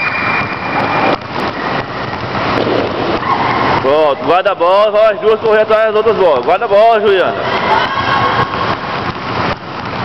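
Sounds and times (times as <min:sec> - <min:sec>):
children playing in echoing hall: 0:00.0 - 0:09.1.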